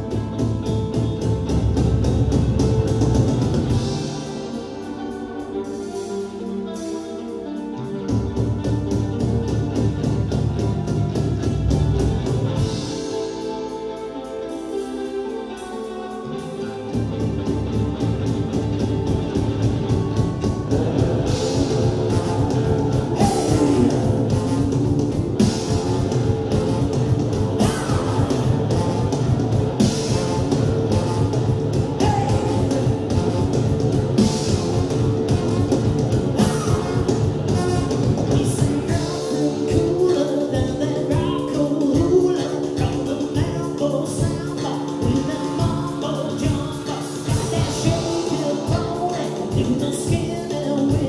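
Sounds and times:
drum kit pounding a beat: 0.0 - 14.9, 15.6 - 51.0
electric guitars and bass: 0.0 - 51.0
trombone: 19.4 - 41.6, 43.9 - 50.3.

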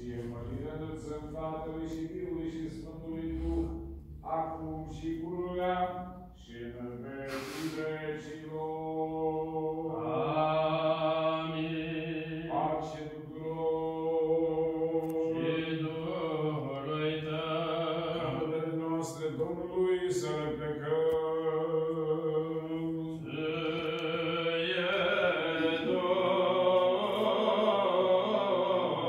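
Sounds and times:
person chanting in long notes: 0.0 - 29.0.

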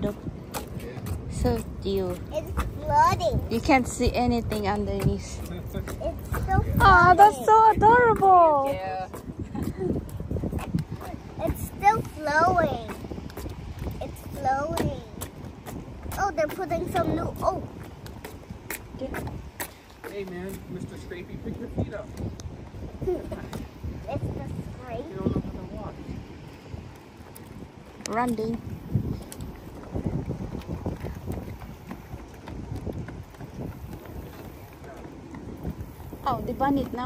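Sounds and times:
footsteps on wooden boardwalk: 0.0 - 37.0
low wind rumble: 0.0 - 37.0
shoes scraping on wooden planks: 29.1 - 37.0.

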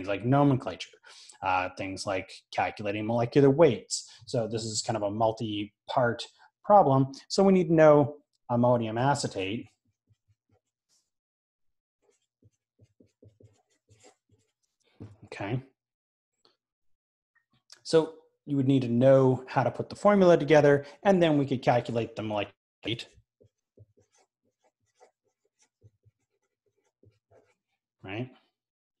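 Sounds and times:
marker squeaking on paper: 9.6 - 11.2, 12.0 - 14.9, 23.4 - 27.8.

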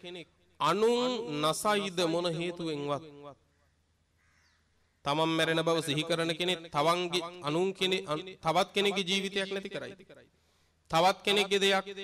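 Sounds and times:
man speaking: 0.0 - 3.0, 5.1 - 10.0, 10.9 - 12.0
faint distant bird call: 3.4 - 5.1.

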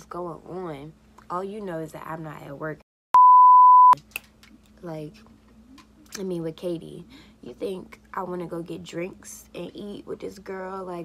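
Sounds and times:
woman speaking: 0.0 - 2.8, 4.8 - 5.3, 6.1 - 11.0
censor bleep tone: 3.1 - 4.0.

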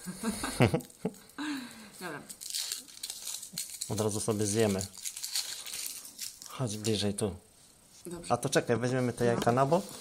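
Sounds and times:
foil wrapper crinkling: 2.0 - 7.1.

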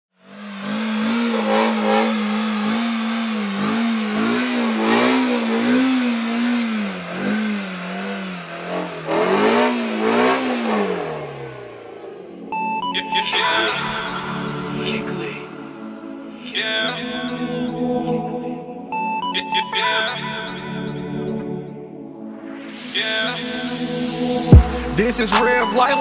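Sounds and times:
spinning tyres hissing: 0.2 - 12.3
car engine revving high: 0.2 - 12.7.

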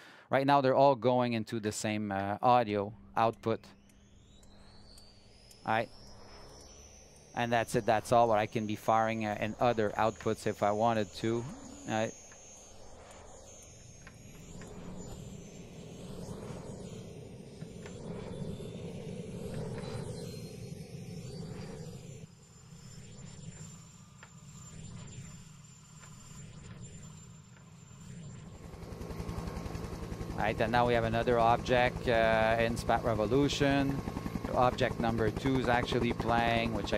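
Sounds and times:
helicopter rotor and engine: 1.8 - 36.9.

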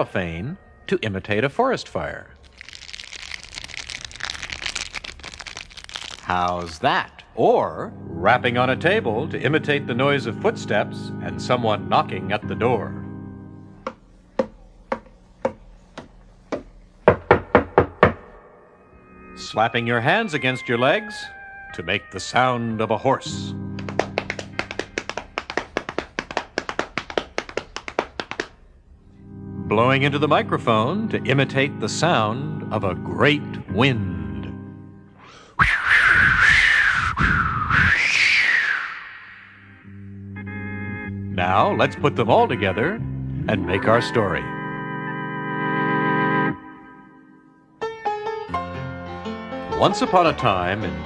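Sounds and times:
cellophane crinkling: 2.4 - 6.8
held musical chord: 7.4 - 13.9, 18.5 - 24.8, 29.0 - 35.2, 39.8 - 51.0
hands slapping legs: 23.8 - 28.6.

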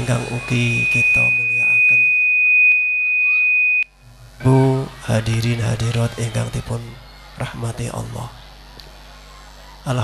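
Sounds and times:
microphone feedback whistle: 0.0 - 3.9.

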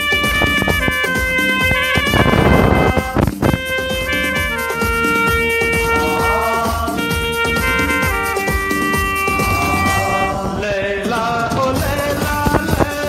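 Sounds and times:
saxophone playing long notes: 0.0 - 10.7
backing track with percussion: 0.0 - 13.0.

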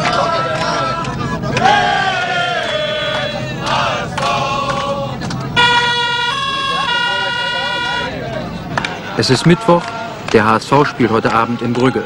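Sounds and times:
voices: 0.0 - 12.0
loud two-tone horn: 5.6 - 8.2.

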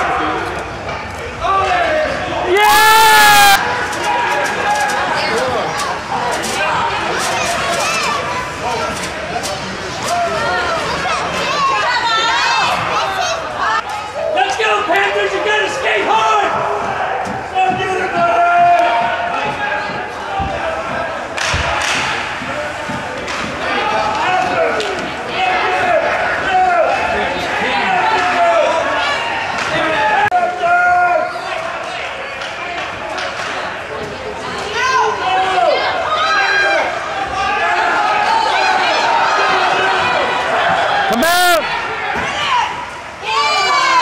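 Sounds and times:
spectators' voices: 0.0 - 44.0
spectator shouting: 1.4 - 3.6, 34.8 - 44.0.

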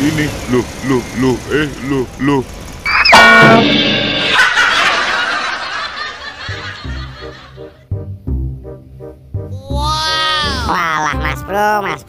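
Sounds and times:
comedic laughter effect: 4.2 - 7.8, 9.7 - 11.9.

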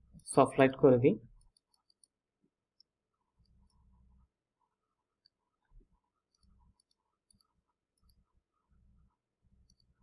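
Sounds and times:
person speaking: 0.2 - 1.4
computer mouse clicks: 1.3 - 4.0, 5.2 - 8.4, 9.5 - 10.0.

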